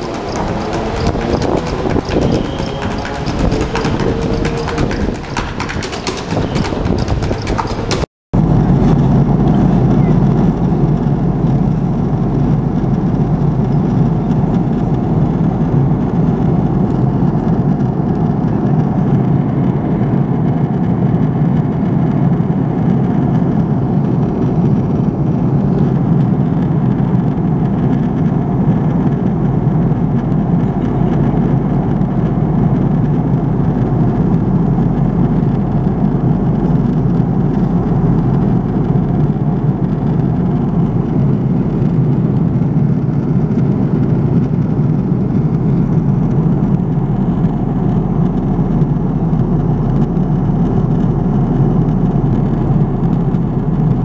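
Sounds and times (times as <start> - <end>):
drumsticks beating plastic buckets: 0.0 - 8.1
airliner cabin drone: 0.0 - 54.0.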